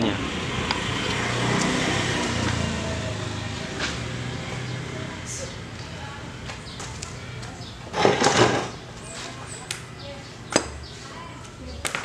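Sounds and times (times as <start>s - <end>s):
loud scraping rustle: 7.9s - 9.4s.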